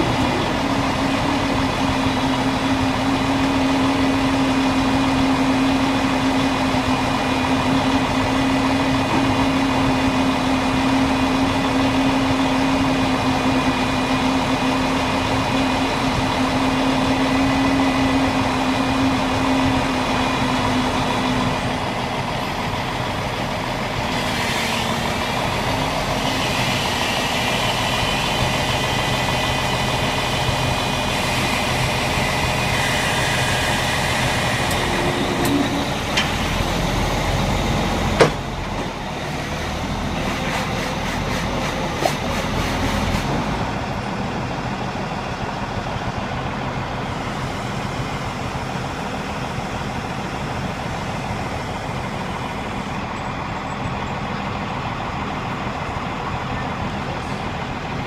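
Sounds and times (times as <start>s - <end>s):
truck engine running: 0.0s - 58.0s.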